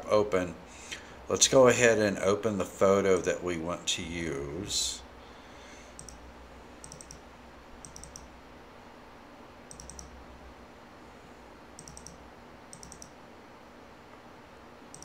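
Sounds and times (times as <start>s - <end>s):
faint room hum: 0.0s - 15.0s
mouse buttons double clicking: 6.0s - 6.2s, 6.8s - 7.2s, 7.8s - 8.3s, 9.7s - 10.1s, 11.8s - 13.2s.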